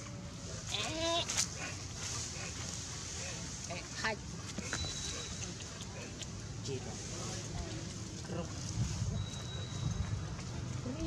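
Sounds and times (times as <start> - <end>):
forest background hum: 0.0 - 11.0.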